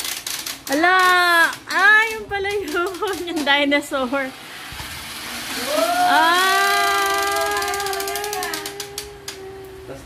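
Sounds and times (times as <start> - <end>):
plastic mechanism ratcheting: 0.0 - 3.7, 7.0 - 9.4
high-pitched wail: 5.5 - 9.8.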